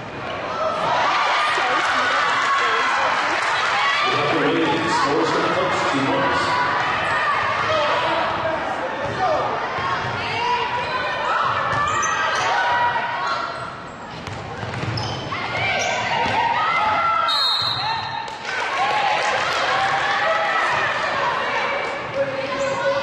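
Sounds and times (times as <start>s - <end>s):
ball bouncing on hardwood court: 14.1s - 16.4s.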